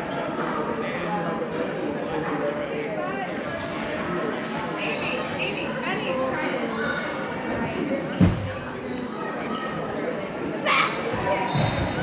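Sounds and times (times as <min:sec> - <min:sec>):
voices calling out in arena: 0:00.0 - 0:12.0.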